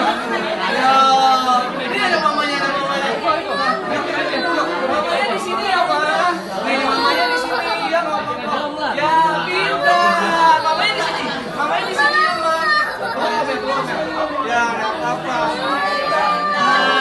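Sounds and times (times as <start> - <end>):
indistinct chatter: 0.0 - 17.0.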